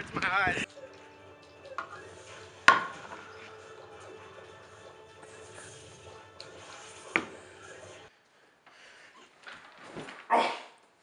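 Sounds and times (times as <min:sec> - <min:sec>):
quiet background music: 0:00.0 - 0:08.2.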